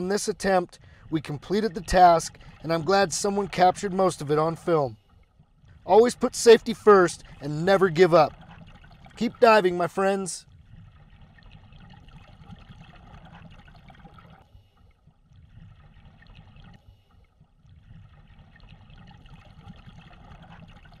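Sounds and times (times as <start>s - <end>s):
faint trickling water: 0.0s - 21.0s.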